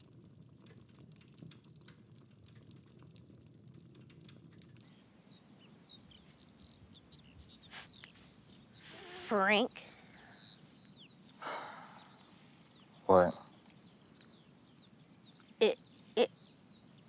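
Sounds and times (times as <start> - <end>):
light ticks: 0.0 - 5.0
faint high chirps: 4.9 - 17.0.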